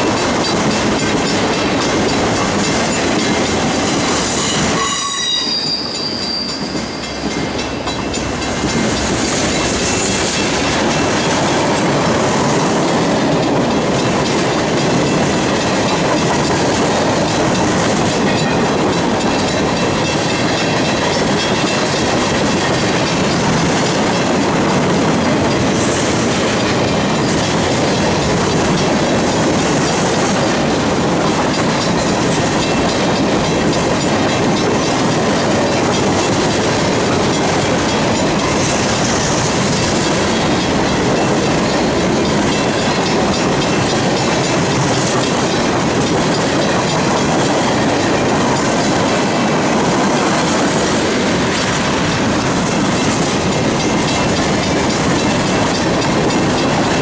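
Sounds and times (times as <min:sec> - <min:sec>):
freight train wheels on rails: 0:00.0 - 0:57.0.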